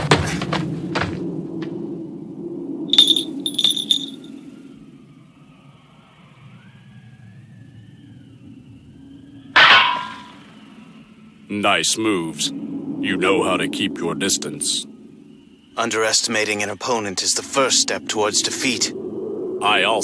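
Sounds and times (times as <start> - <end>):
low rumble: 0.7 - 5.2
ringing metallic clangs: 2.9 - 4.3, 9.6 - 10.4.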